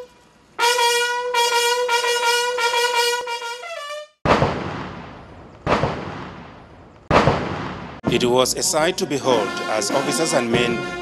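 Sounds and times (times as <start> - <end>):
brass call: 0.0 - 4.2, 9.0 - 11.0
cannon shots echoing: 4.2 - 11.0.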